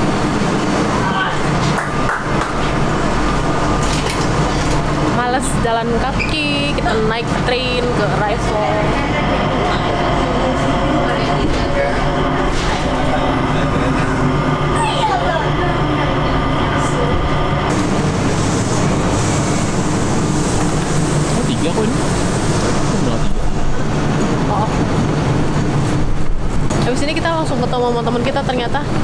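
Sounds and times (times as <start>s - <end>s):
people mover humming and whining: 0.0s - 29.0s
terminal crowd hubbub: 0.0s - 29.0s
faint passenger voices: 0.9s - 2.8s, 5.2s - 17.7s, 21.2s - 25.0s.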